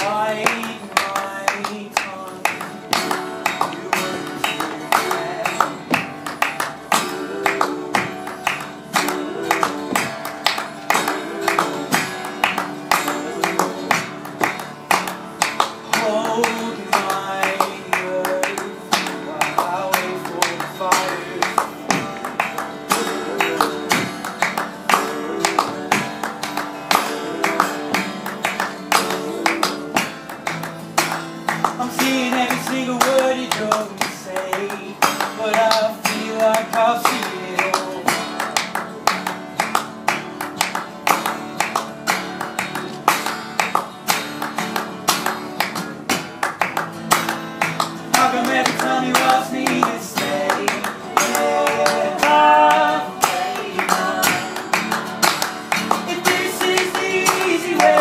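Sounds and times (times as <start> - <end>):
man singing: 0.0 - 14.2, 15.8 - 30.2, 31.7 - 38.4, 48.0 - 55.0, 55.8 - 58.0
acoustic guitar strumming: 0.0 - 58.0
people clapping along: 0.0 - 58.0.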